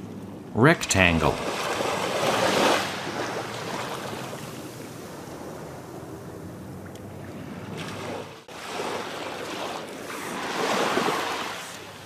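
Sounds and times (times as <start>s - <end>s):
ocean surf on a beach: 0.0s - 12.0s.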